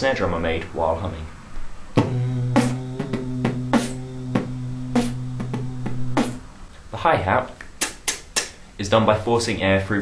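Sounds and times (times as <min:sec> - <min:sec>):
nasal hum: 0:01.9 - 0:06.6
beatboxed kick and snare: 0:02.0 - 0:06.4, 0:07.6 - 0:08.6.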